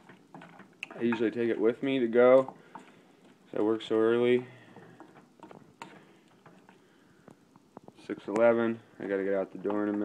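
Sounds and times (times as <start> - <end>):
oatmeal ticking and popping: 0.0 - 10.0.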